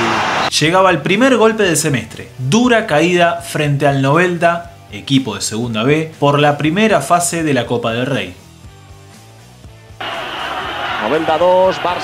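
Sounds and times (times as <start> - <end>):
stadium crowd noise on television: 0.0 - 0.6, 10.0 - 12.0
soft background music: 0.5 - 10.0.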